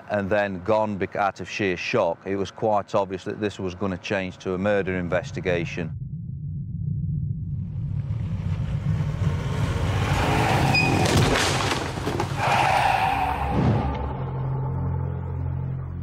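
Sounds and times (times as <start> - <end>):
low rumbling drone: 4.4 - 11.2, 13.3 - 16.0
car rushing by: 8.0 - 14.8.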